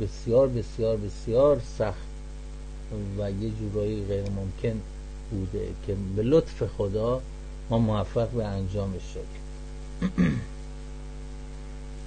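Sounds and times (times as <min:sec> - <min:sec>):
electrical mains hum: 0:00.0 - 0:12.0
brief vocal sound: 0:10.0 - 0:10.5.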